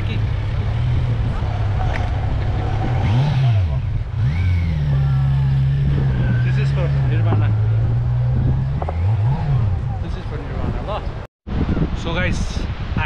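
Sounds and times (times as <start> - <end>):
motorcycle engine revving: 0.0 - 10.6.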